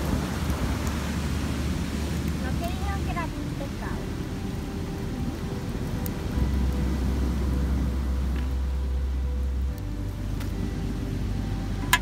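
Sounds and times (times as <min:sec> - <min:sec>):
surf rushing: 0:00.0 - 0:08.8
wind buffeting microphone: 0:00.0 - 0:12.0.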